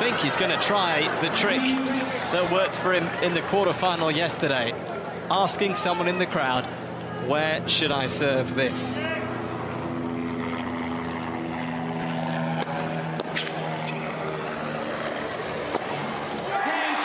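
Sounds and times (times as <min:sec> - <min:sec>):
droning hum of held tones: 0:00.0 - 0:17.0
tennis ball struck by rackets: 0:15.6 - 0:15.9.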